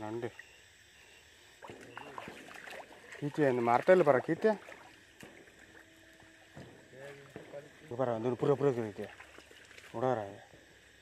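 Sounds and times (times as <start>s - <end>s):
faint outdoor background: 0.0s - 11.0s
faint steady tone: 0.0s - 11.0s.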